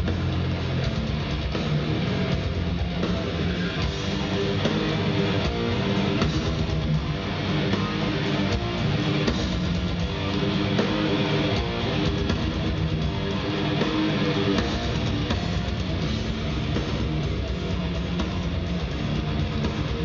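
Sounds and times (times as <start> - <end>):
distorted electric guitar riffing: 0.0 - 20.0
drums: 0.0 - 20.0.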